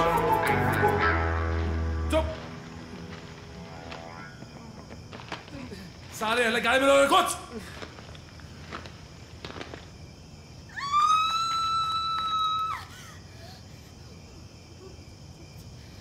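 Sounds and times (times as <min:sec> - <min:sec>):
faint footsteps: 0:01.0 - 0:06.8, 0:07.6 - 0:10.0
woman screaming: 0:10.7 - 0:13.2.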